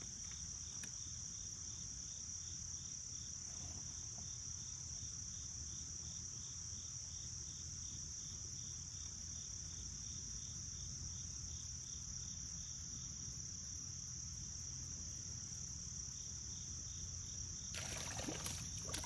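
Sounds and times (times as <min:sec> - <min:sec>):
high-pitched insect chorus: 0:04.2 - 0:19.0.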